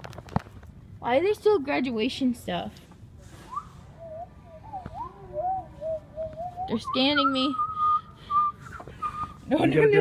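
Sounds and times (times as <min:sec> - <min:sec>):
person whistling a tune: 0:03.4 - 0:09.4.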